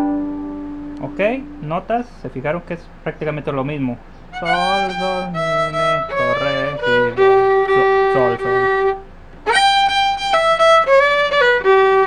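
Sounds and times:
solo violin: 4.3s - 12.0s.

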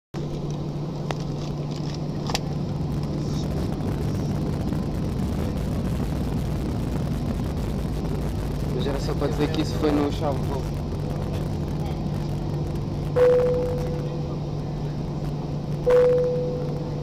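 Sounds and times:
jet engine hum inside cabin: 0.2s - 17.0s.

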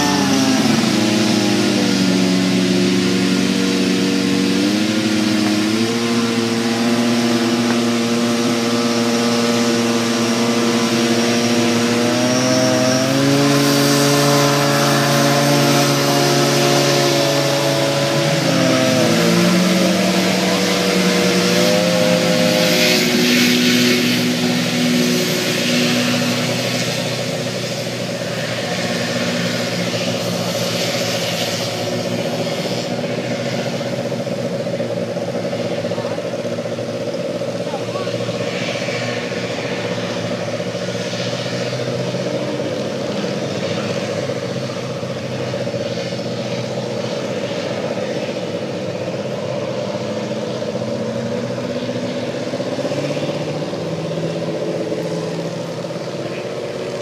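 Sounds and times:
hovercraft engine drone: 0.0s - 57.0s.

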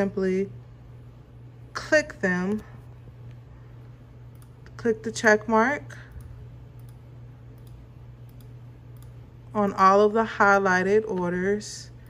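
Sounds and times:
low hum: 0.0s - 12.0s
computer mouse clicking: 4.3s - 4.8s, 6.1s - 9.2s.

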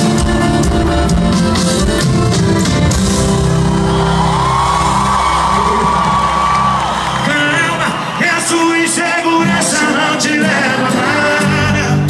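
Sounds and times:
live band through pa: 0.0s - 12.0s.

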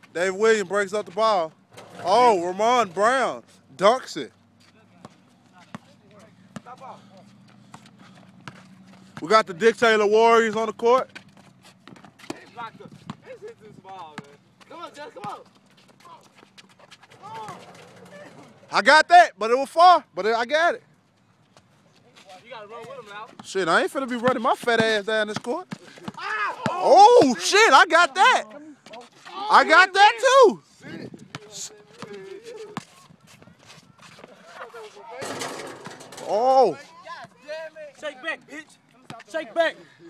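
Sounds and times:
basketball bouncing: 7.7s - 9.4s, 10.4s - 13.2s, 24.3s - 26.8s.

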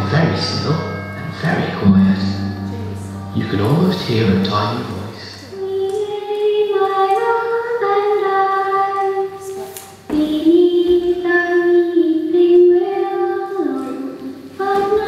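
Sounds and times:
child singing sustained notes: 5.2s - 15.0s.

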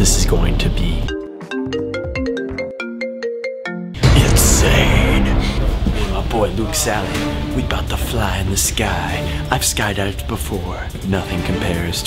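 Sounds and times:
phone ringtone melody: 1.2s - 4.0s.

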